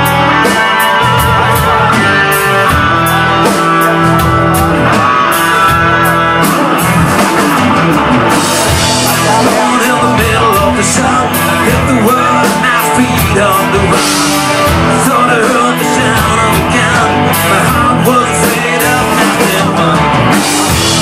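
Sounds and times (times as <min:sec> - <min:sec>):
lead guitar bending notes: 0:00.0 - 0:21.0
rock band playing live: 0:00.0 - 0:21.0.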